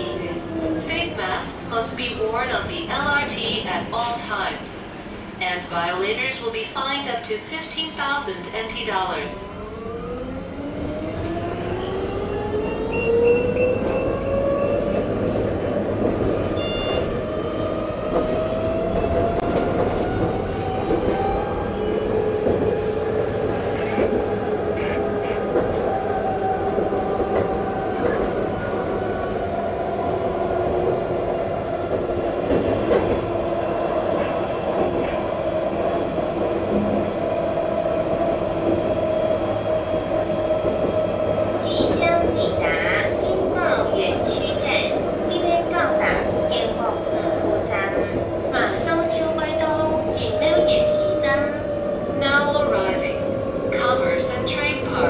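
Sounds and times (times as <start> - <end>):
wheels rumbling on rails: 8.0 - 55.0.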